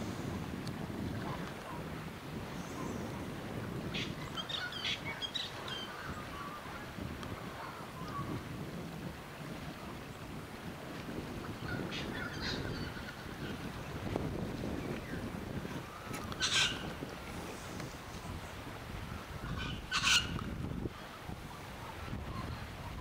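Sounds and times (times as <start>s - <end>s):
wind rumbling on microphone: 0.0s - 23.0s
bird giving short calls: 19.6s - 20.4s.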